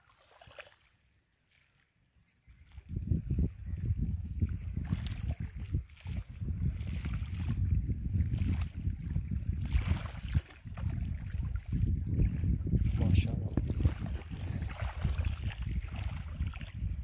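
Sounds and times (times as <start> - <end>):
wind buffeting microphone: 2.4 - 17.0.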